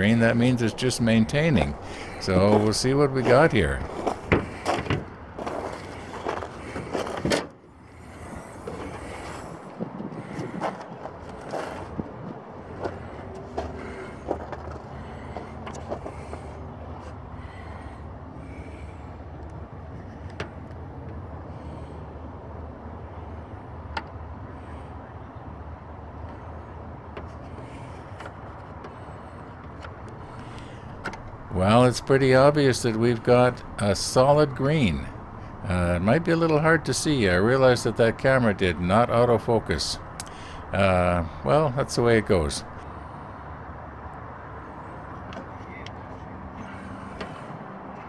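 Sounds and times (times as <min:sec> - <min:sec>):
low steady hum: 0:00.0 - 0:45.5
car bonnet clunk: 0:04.0 - 0:05.6.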